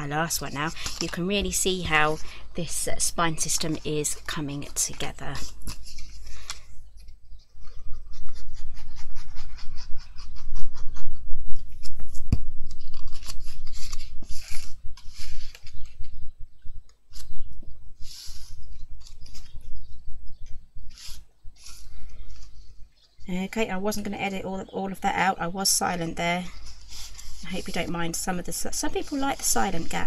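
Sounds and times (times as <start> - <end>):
card rustling: 0.3 - 7.2, 11.8 - 16.1.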